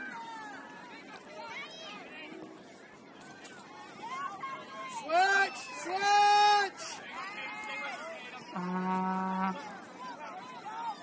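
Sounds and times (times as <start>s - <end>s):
low horn note: 8.5s - 9.6s.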